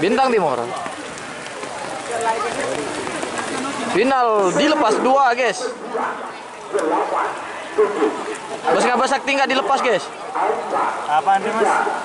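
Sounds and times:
commentary: 0:00.0 - 0:12.0
outdoor crowd voices: 0:00.0 - 0:12.0.

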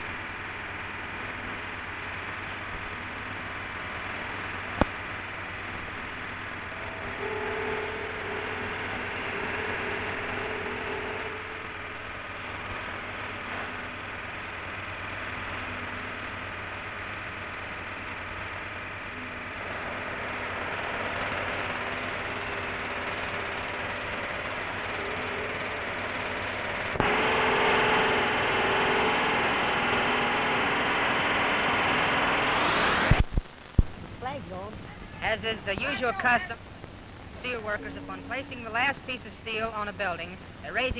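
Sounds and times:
rising whine: 0:00.0 - 0:40.6
film soundtrack hiss: 0:00.0 - 0:40.9
faint indistinct background sounds: 0:33.2 - 0:40.9.

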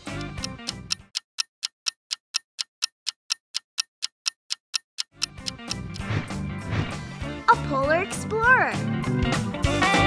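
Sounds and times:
countdown timer ticking: 0:00.0 - 0:06.1.

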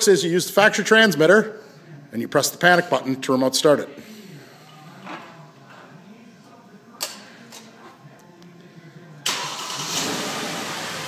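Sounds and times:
car engine starting and running: 0:09.2 - 0:11.0.

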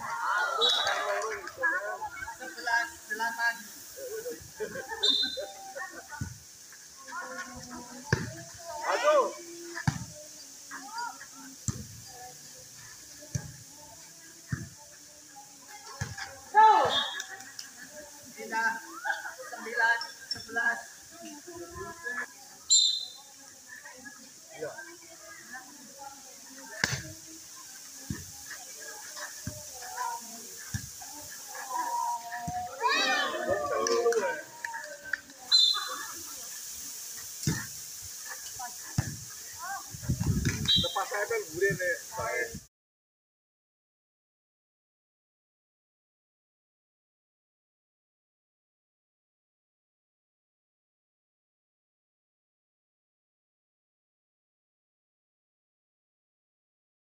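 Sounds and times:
women shouting and calling out: 0:00.0 - 0:03.7, 0:07.0 - 0:11.6, 0:15.1 - 0:20.0, 0:24.8 - 0:36.6.

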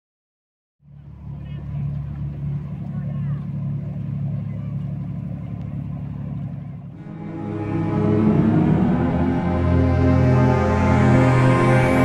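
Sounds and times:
low engine drone: 0:00.8 - 0:12.0.

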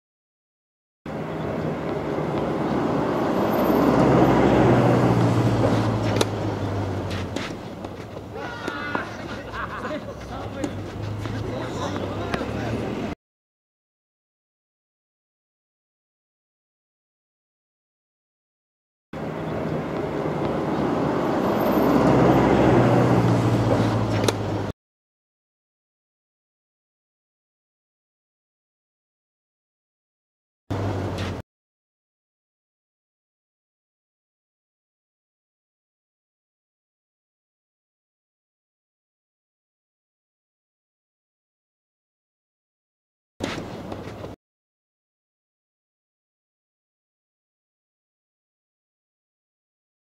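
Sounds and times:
vehicle passing: 0:01.1 - 0:13.2, 0:19.2 - 0:24.7, 0:30.7 - 0:31.4
tennis ball strikes: 0:05.6 - 0:09.6, 0:23.7 - 0:24.6, 0:43.4 - 0:44.3
person calling out: 0:08.4 - 0:09.2.

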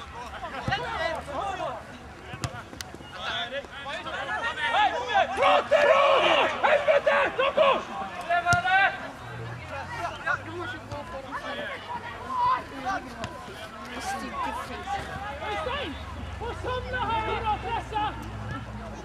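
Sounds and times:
voices talking and calling out: 0:00.0 - 0:19.0.

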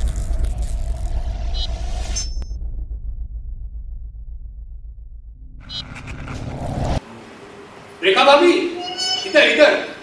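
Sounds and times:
deep low rumble: 0:00.0 - 0:07.0.

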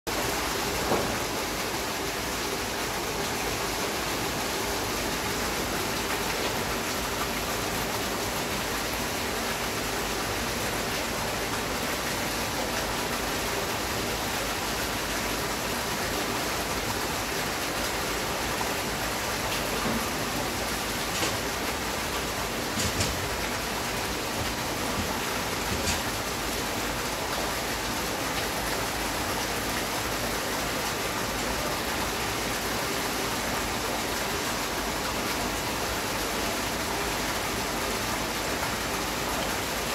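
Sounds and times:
running water rushing: 0:00.1 - 0:39.9.

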